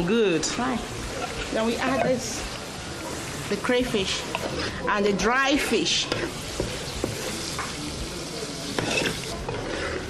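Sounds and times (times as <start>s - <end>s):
soup sizzling in oil: 0.0s - 10.0s.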